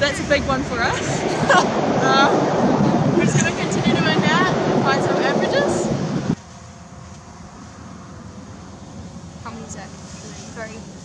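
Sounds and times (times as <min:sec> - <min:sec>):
steady outdoor rumble: 0:00.0 - 0:11.0
wind buffeting microphone: 0:00.0 - 0:11.0.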